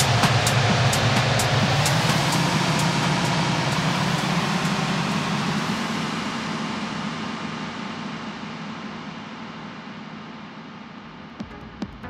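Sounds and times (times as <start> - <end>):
hi-hat ticks: 0.0 - 5.2
bass: 0.0 - 9.1, 10.9 - 12.0.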